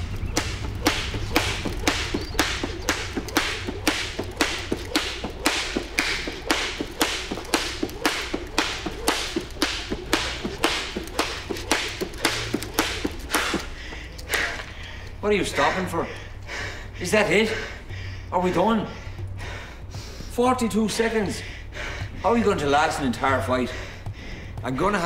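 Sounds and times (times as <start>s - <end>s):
skipping rope slapping floor: 0.0s - 16.6s.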